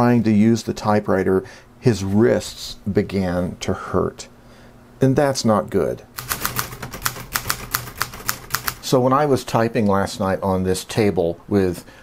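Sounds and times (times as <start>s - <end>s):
manual typewriter typing: 6.2s - 8.9s.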